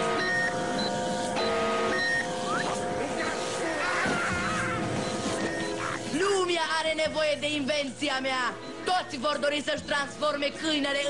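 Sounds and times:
short high electronic beeps: 0:00.0 - 0:03.6, 0:04.6 - 0:06.4
electronic hum of held tones: 0:00.0 - 0:06.5
rising whistle-like glide: 0:02.0 - 0:03.4.

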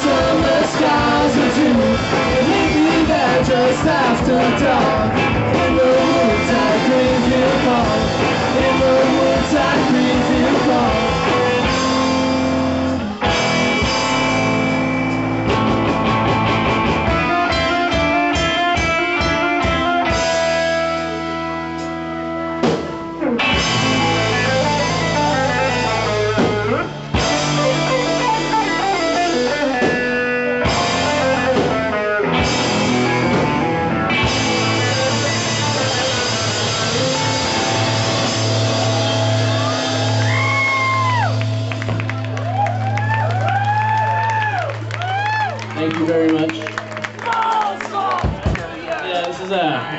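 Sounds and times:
drum kit: 0:00.0 - 0:45.3
rock band playing live: 0:00.0 - 0:48.8
bass guitar: 0:00.0 - 0:49.0
electric guitars: 0:00.0 - 0:49.0.

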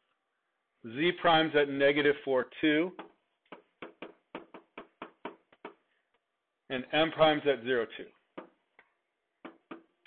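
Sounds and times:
stylus tapping on a surface: 0:03.0 - 0:05.9, 0:08.3 - 0:10.0.

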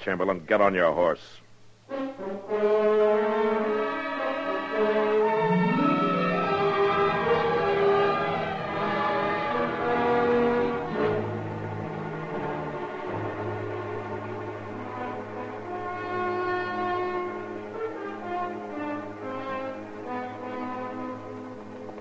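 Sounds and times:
orchestral brass chords: 0:01.9 - 0:22.0
low held note: 0:05.1 - 0:11.8.

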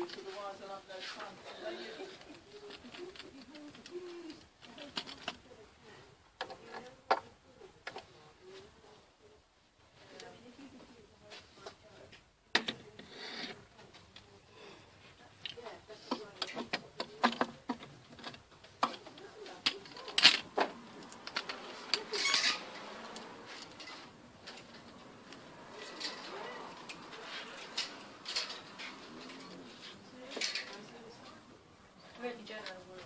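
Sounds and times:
faint indistinct voices: 0:00.0 - 0:33.0
clicks knocks and rustles: 0:15.5 - 0:31.0.

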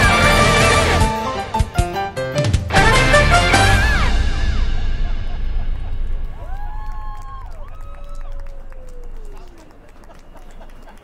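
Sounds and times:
music: 0:00.0 - 0:07.8
city noise: 0:02.8 - 0:11.0.

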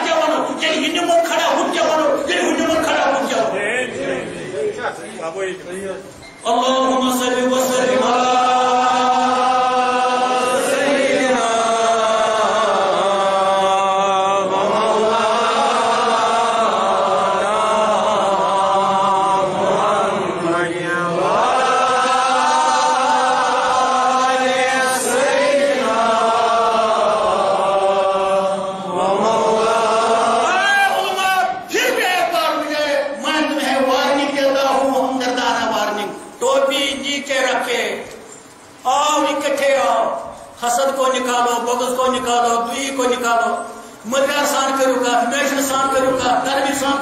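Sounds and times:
man chanting: 0:00.0 - 0:04.8, 0:05.6 - 0:25.1, 0:30.3 - 0:38.2, 0:38.8 - 0:47.0.

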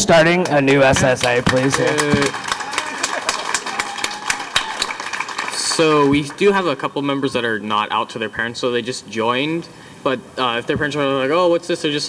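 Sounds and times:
scattered applause: 0:00.3 - 0:07.3.

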